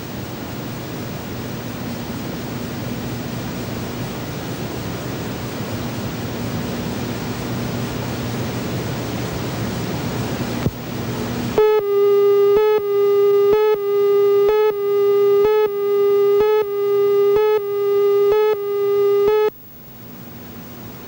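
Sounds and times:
tape hiss and hum: 9.9 - 21.0
buzzy countdown tone: 11.6 - 19.5.

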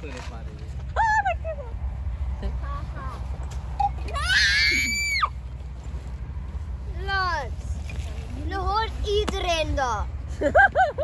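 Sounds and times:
girl shrieking playfully: 4.1 - 5.4.

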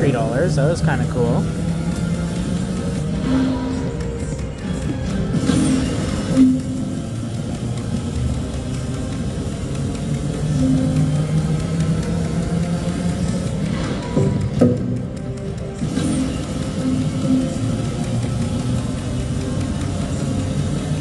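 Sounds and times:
slot machine game music: 0.0 - 21.0.

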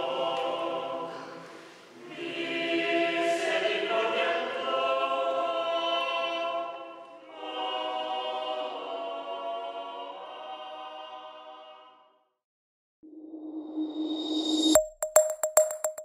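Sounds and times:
mixed choir singing: 0.0 - 12.1.

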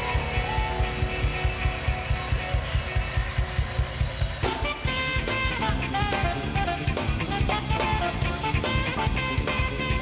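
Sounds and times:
drum kit: 0.0 - 10.0
electric guitar: 0.0 - 10.0.

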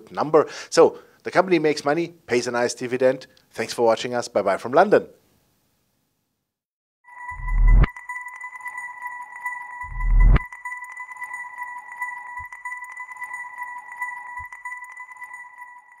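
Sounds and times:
steady high electronic tone: 7.1 - 16.0.

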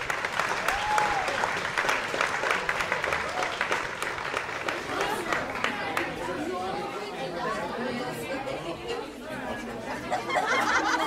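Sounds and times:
crowd chattering: 0.0 - 11.0.

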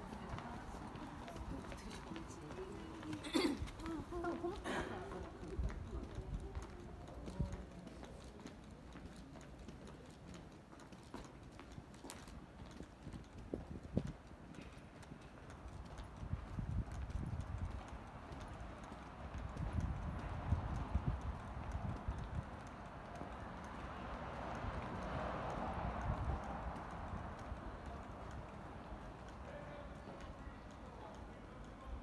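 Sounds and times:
footsteps on pavement: 0.0 - 32.0
low city background hum: 0.0 - 32.0.

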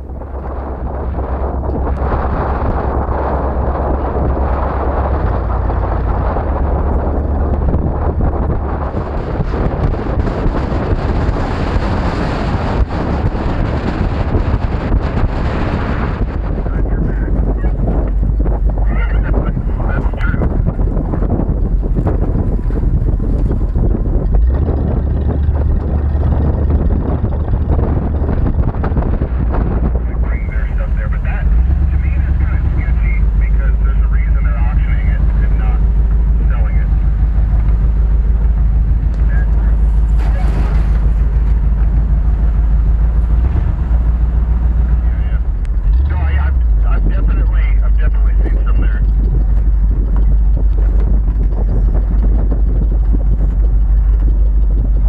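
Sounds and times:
vehicle driving on dirt track: 0.0 - 55.0
wind buffeting camera: 0.0 - 55.0.

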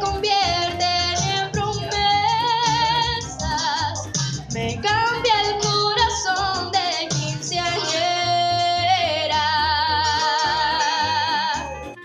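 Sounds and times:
high-pitched singing with vibrato: 0.0 - 12.0
instrumental accompaniment: 0.0 - 12.0.

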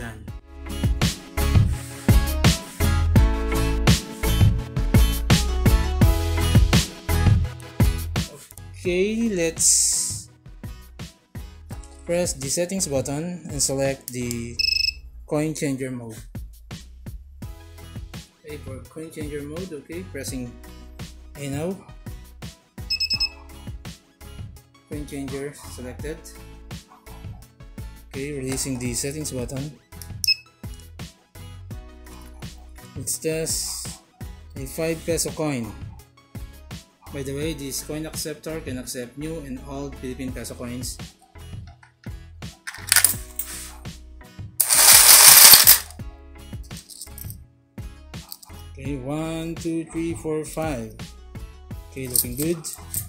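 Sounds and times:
background music: 0.0 - 53.0
short high electronic beeps: 14.6 - 15.0, 22.9 - 23.3
coins clattering into tray: 22.9 - 23.3, 42.7 - 43.7, 44.6 - 45.9, 46.7 - 47.3, 52.1 - 53.0
coin hopper motor: 44.6 - 45.9.

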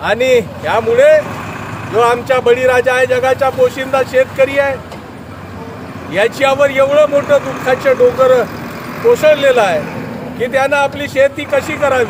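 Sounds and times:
man speaking loudly: 0.0 - 1.3, 1.9 - 4.8, 6.0 - 12.0.

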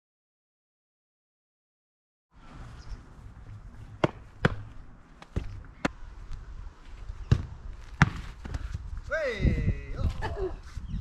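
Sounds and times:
football kicked thuds: 4.0 - 6.0, 7.2 - 8.8.

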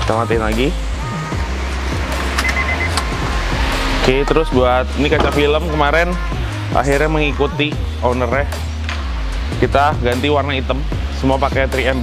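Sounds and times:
background music with steady bass: 0.0 - 12.0.

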